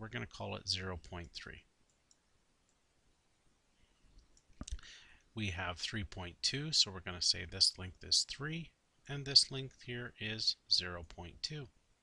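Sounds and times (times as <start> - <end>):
man speaking: 0.0 - 1.7, 5.4 - 11.7.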